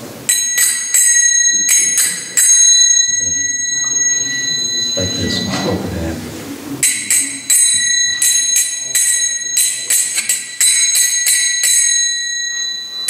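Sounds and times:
hand cymbals ringing: 0.0s - 6.1s, 6.8s - 13.0s.

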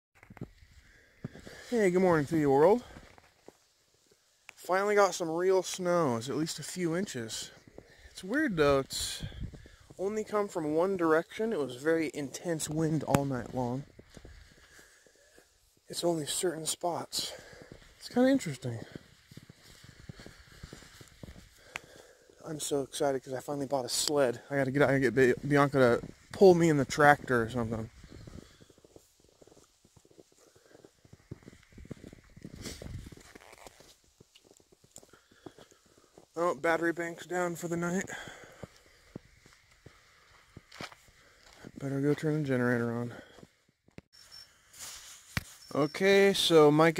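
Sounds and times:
footsteps crunching in snow: 0.3s - 42.4s, 44.1s - 46.6s.

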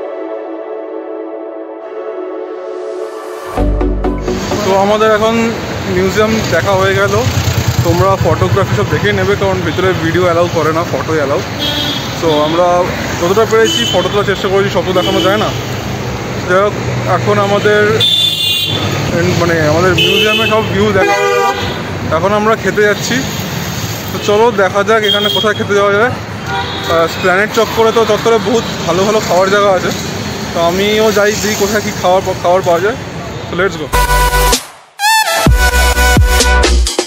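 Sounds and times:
street traffic hum: 3.4s - 34.7s
passing cars: 4.1s - 34.0s
person talking: 4.2s - 11.4s
man speaking: 4.2s - 11.5s, 19.1s - 21.2s, 30.6s - 34.2s
motorcycle passing: 4.7s - 12.1s.

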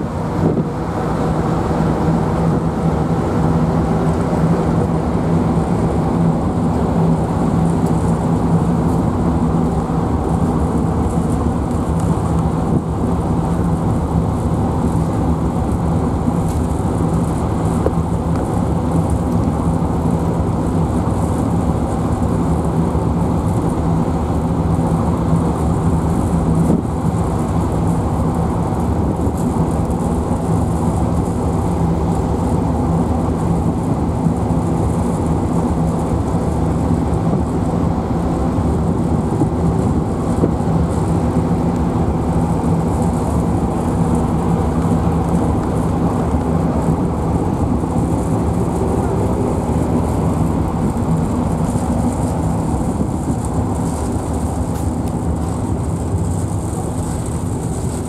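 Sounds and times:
churning wake water: 0.0s - 58.0s
ship engines droning: 0.0s - 58.0s.

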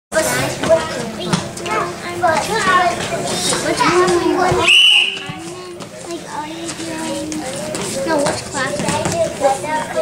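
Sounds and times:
crowd chatter with children: 0.1s - 10.0s.

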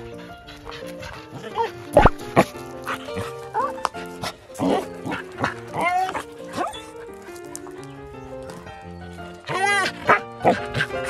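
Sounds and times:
background music: 0.0s - 11.0s
dogs barking and growling: 0.0s - 11.0s.

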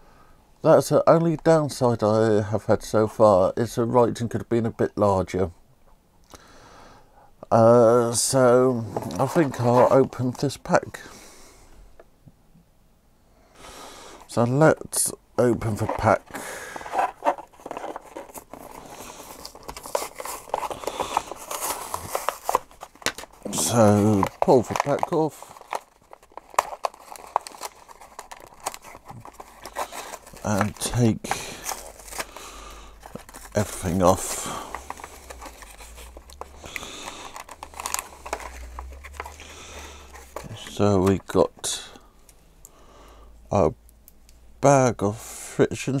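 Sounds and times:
plastic blister pack crinkling: 8.2s - 11.0s, 14.9s - 42.4s
plastic crackling: 8.2s - 11.0s, 14.2s - 42.4s
cardboard tearing: 15.6s - 41.2s.

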